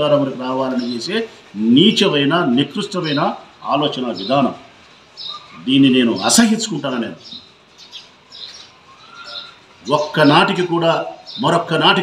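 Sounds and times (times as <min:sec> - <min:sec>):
man talking: 0:00.0 - 0:04.7, 0:05.6 - 0:07.3, 0:09.8 - 0:12.0
faint bird chirps: 0:05.2 - 0:11.5.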